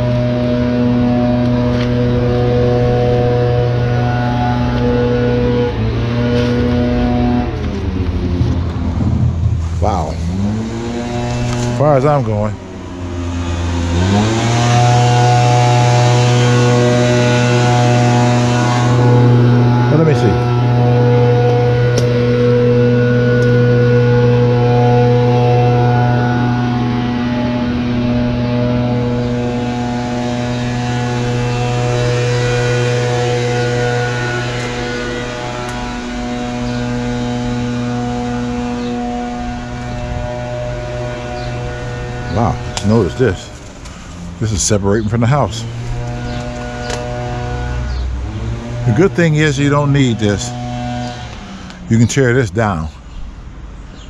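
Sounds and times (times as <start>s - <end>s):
small petrol engine running: 0.0s - 52.0s.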